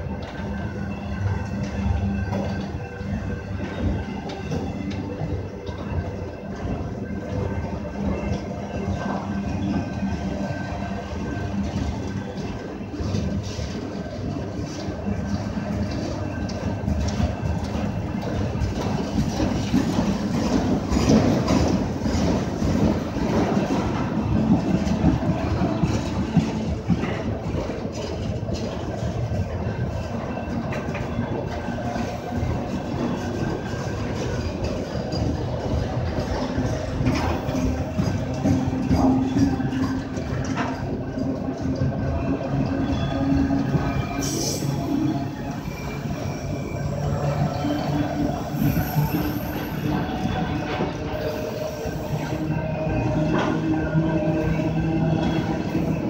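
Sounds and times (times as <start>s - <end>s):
train wheels rumbling on rails: 0.0s - 56.0s.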